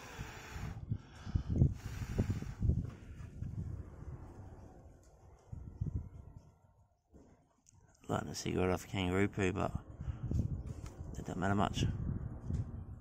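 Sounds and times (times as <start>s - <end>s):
air puffs buffeting microphone: 0.0s - 6.3s, 9.7s - 13.0s.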